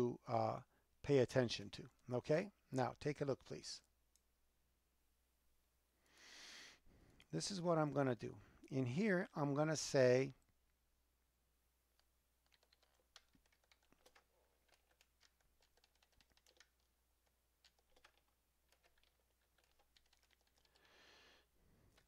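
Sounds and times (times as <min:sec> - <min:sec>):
keyboard and mouse clicks: 0:11.9 - 0:20.8.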